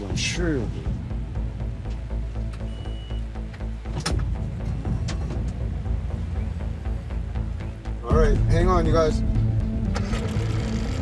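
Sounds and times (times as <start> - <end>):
low sustained music notes: 0.0 - 11.0.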